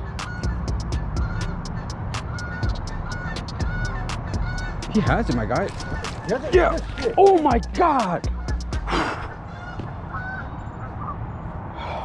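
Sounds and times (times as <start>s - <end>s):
bird calling flat notes: 0.0s - 11.5s.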